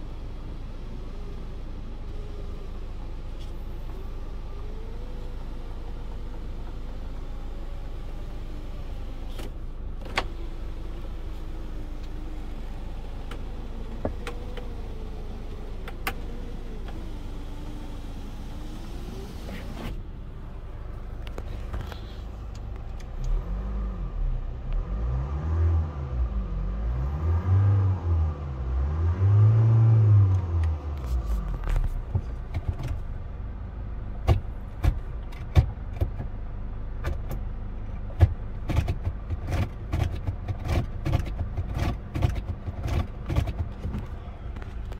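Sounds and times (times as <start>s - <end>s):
car engine idling: 0.0s - 23.5s, 31.0s - 44.9s
car engine revving: 10.2s - 33.1s.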